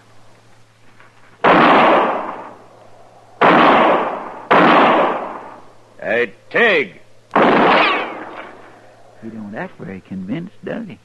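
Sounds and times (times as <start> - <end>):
gunshot: 1.4 - 2.6, 3.4 - 5.6, 7.4 - 8.6.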